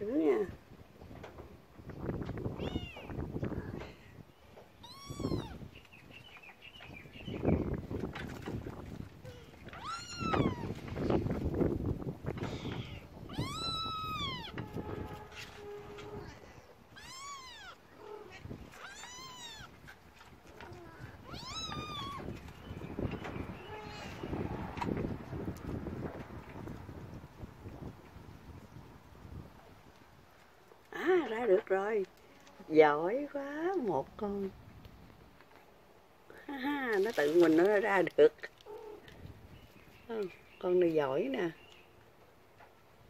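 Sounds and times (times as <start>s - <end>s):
kitten meowing: 2.6s - 3.1s, 4.8s - 5.6s, 9.7s - 10.7s, 12.5s - 14.6s, 16.9s - 19.8s, 20.7s - 22.3s.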